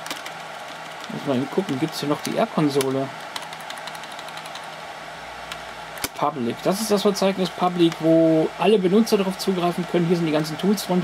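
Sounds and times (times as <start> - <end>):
computer hardware hum: 0.0 - 11.0.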